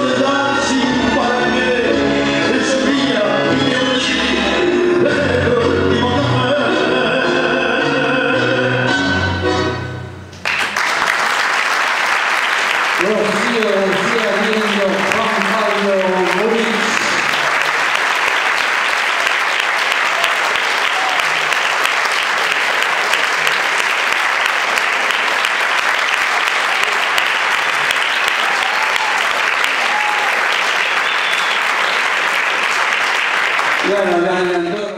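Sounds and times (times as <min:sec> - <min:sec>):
audience applauding: 0:10.3 - 0:34.9.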